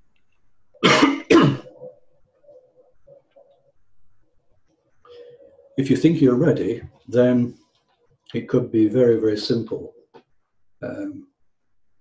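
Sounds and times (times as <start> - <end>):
man coughing: 0.8 - 1.8.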